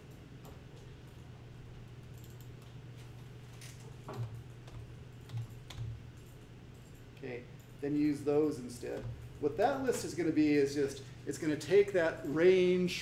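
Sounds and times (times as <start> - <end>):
steady low room hum: 0.0 - 13.0
computer keyboard keystrokes: 2.0 - 2.8, 3.6 - 7.0.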